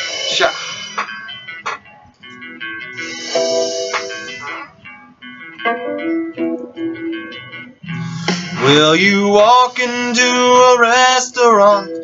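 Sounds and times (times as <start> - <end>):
guitar playing plucked melody: 1.0 - 12.0.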